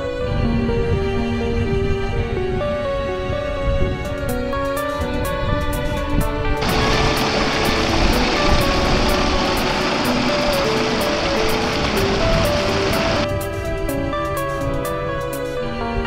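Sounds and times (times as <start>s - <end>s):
background music melody: 0.0s - 16.0s
water rushing down a channel: 6.6s - 13.3s.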